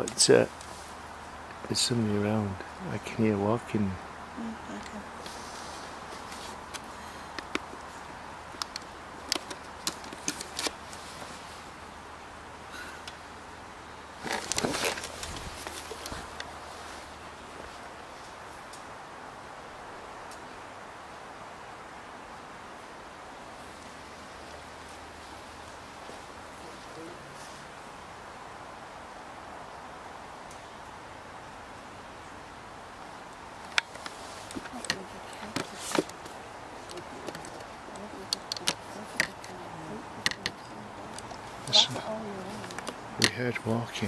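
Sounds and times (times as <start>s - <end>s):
faint steady hiss: 0.0s - 44.0s
rustling scuffle: 5.2s - 6.9s, 14.2s - 18.4s, 33.8s - 39.6s.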